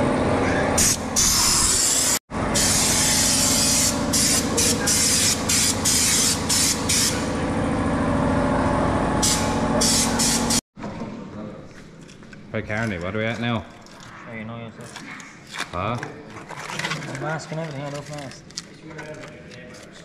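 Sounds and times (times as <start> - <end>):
compressed-air spray gun hissing: 0.8 - 7.3, 9.2 - 10.6.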